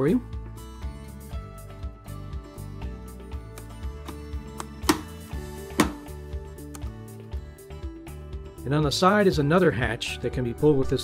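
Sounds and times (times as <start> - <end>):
guitar music: 0.6 - 8.8.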